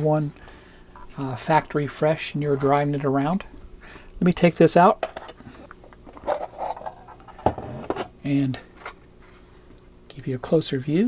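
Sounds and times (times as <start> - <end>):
plastic rubbing and scraping: 6.1 - 8.1.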